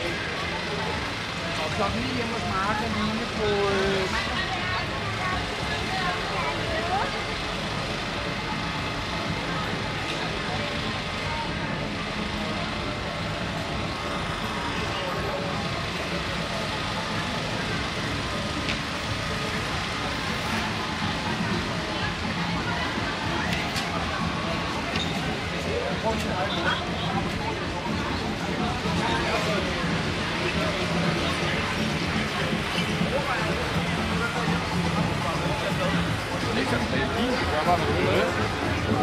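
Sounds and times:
indistinct voices of passers-by: 0:00.0 - 0:39.0
steady traffic noise: 0:00.0 - 0:39.0.

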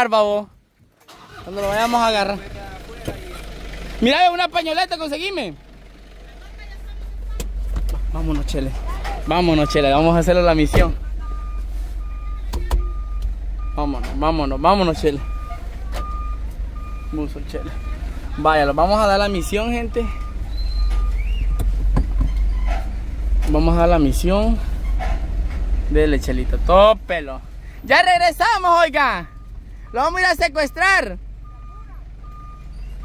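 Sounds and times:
truck engine rumbling: 0:00.0 - 0:33.0
reversing beeper: 0:09.2 - 0:21.7.

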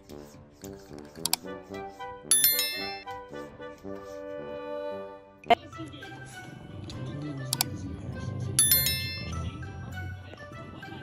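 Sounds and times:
background music: 0:00.0 - 0:11.0
bright ringing ding: 0:02.3 - 0:03.0, 0:08.6 - 0:09.4.

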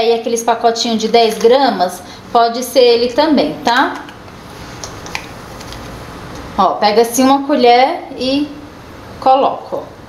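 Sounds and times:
low room hiss: 0:00.0 - 0:10.0.

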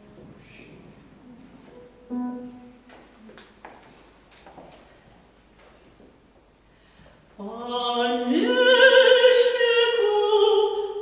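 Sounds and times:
steady pitched note: 0:01.4 - 0:03.3.

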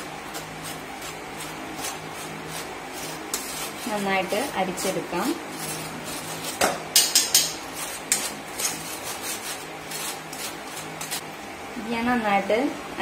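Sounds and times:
metal spoon scraping a mesh sieve: 0:00.0 - 0:11.2.

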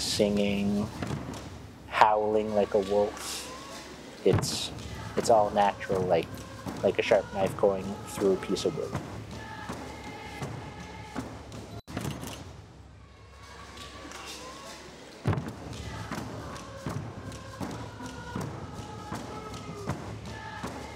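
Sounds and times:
voices singing held notes: 0:01.9 - 0:11.8, 0:13.1 - 0:20.9.

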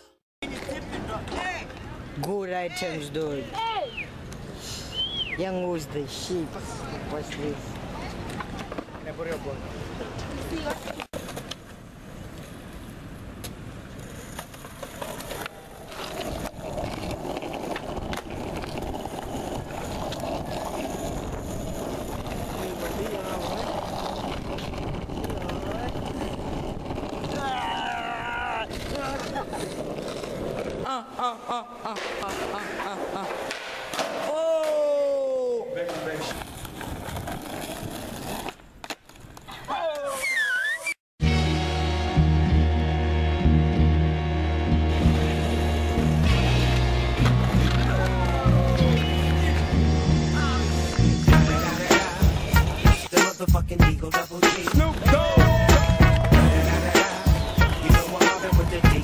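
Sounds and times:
voices calling and shouting: 0:00.4 - 0:11.0
skateboard wheels rolling on asphalt: 0:00.4 - 0:30.9, 0:32.0 - 0:40.9, 0:44.9 - 0:53.0, 0:54.6 - 0:59.0.

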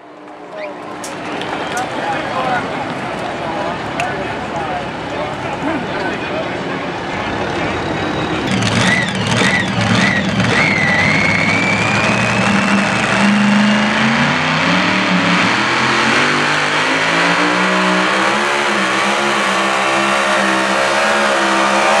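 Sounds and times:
tractor engine revving hard: 0:07.4 - 0:22.0.

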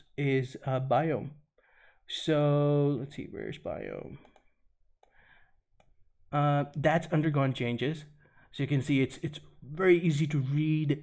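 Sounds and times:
computer mouse clicks: 0:04.2 - 0:05.2.

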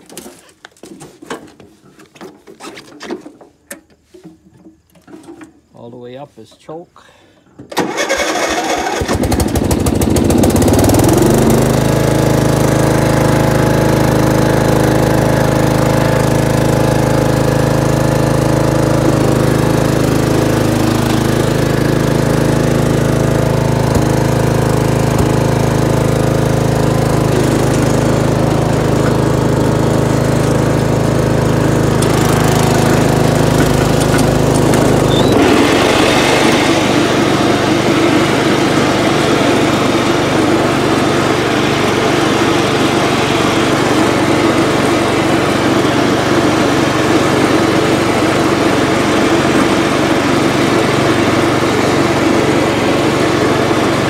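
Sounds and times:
electric starter cranking: 0:07.6 - 0:44.3
mower engine running: 0:07.7 - 0:54.0.

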